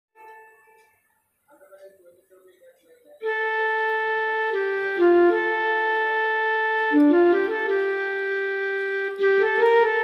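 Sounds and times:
keyboard playing flute-like melody: 0:00.2 - 0:01.1, 0:03.2 - 0:10.0.

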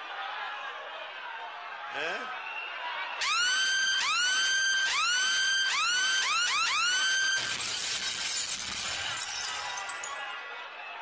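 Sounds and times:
hissing shattering noise: 0:07.4 - 0:10.2.

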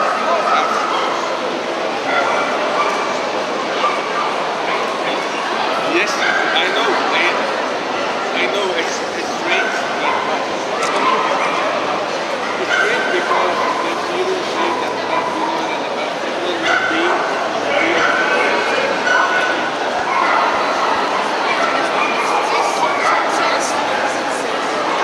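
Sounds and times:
dogs barking: 0:00.0 - 0:01.4, 0:02.0 - 0:07.4, 0:08.4 - 0:24.2
crowd chatter: 0:00.0 - 0:25.0.

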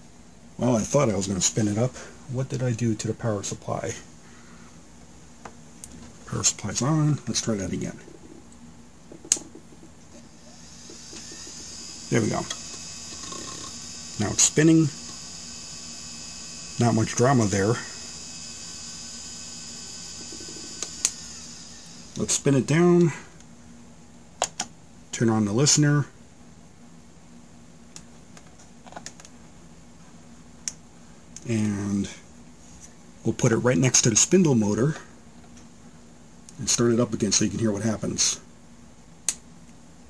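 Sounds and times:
hard drive high whine: 0:00.0 - 0:23.8
faint low hum: 0:00.0 - 0:40.0.

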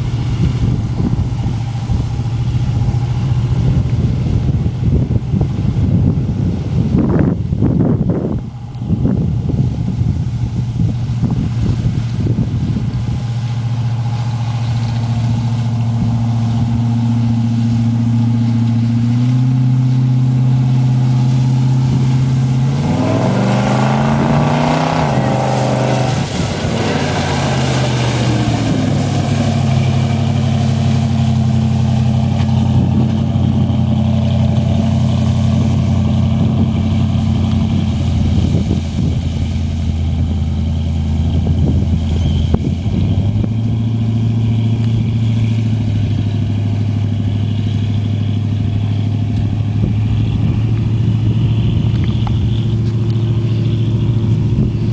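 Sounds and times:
swamp buggy engine revving: 0:00.0 - 0:54.9.

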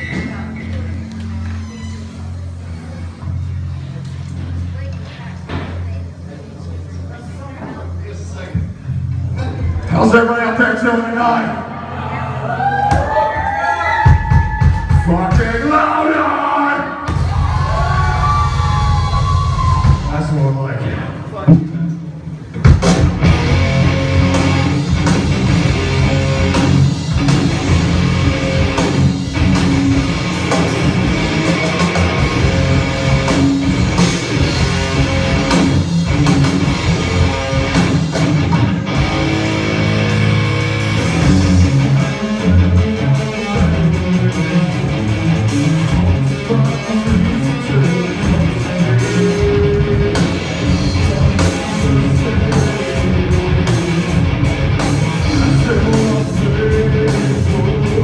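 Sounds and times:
crowd voices: 0:00.0 - 0:58.0
live metal band guitar and bass: 0:13.8 - 0:21.3, 0:22.4 - 0:58.0.

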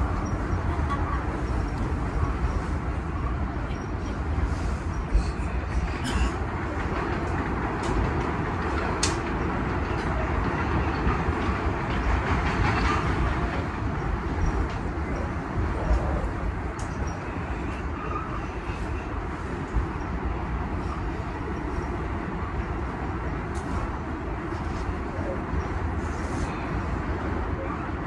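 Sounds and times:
passing subway train: 0:00.0 - 0:28.0
subway train wheels rumbling: 0:00.0 - 0:28.0.

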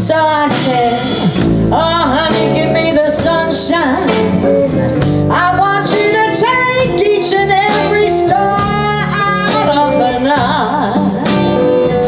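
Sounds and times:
woman singing: 0:00.0 - 0:04.5, 0:05.3 - 0:12.0
drums: 0:00.0 - 0:12.0
electric guitars: 0:00.0 - 0:12.0.

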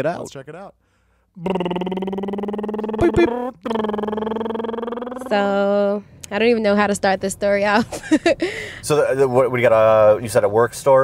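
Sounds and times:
mouth clicks: 0:01.4 - 0:05.4
person humming: 0:01.4 - 0:05.7.

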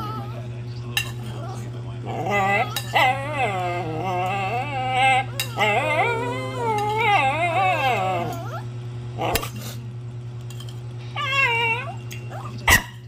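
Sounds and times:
steady low hum: 0:00.0 - 0:13.0
pet animal wavering calls: 0:02.1 - 0:09.4, 0:11.1 - 0:12.6.

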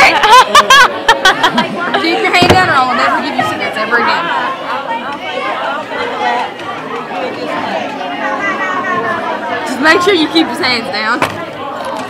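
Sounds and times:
chatter of young voices: 0:00.0 - 0:12.0.

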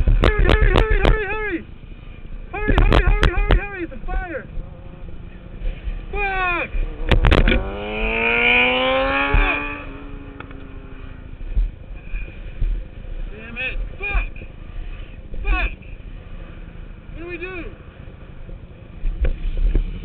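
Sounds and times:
wind noise: 0:00.0 - 0:01.4, 0:02.5 - 0:03.7, 0:05.6 - 0:14.6
motorcycle engine revving: 0:04.4 - 0:13.3.

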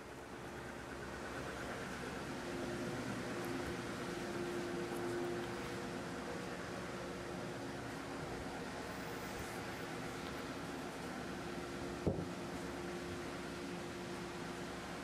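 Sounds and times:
shop machinery humming: 0:00.0 - 0:15.0.

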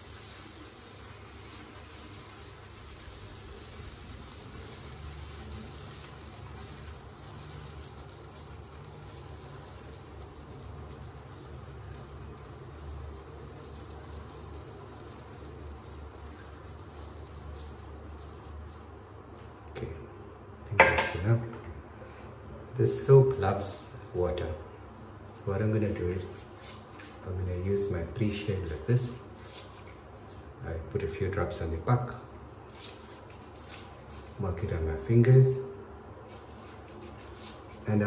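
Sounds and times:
shaving brush scrubbing soap: 0:00.0 - 0:19.6, 0:22.9 - 0:30.5, 0:31.5 - 0:35.3, 0:35.9 - 0:38.0.

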